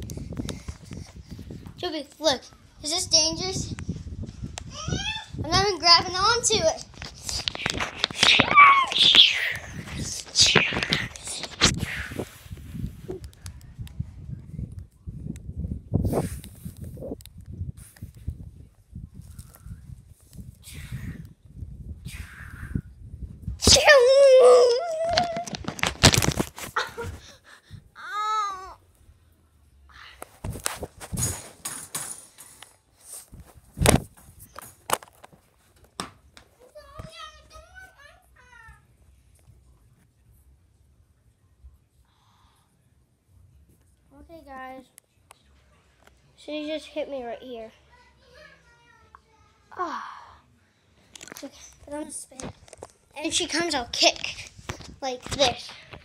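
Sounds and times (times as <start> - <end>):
tablet handling rubbing and bumps: 6.4 - 11.8, 24.9 - 26.8, 30.4 - 36.0
tablet handling rubbing: 6.8 - 11.8.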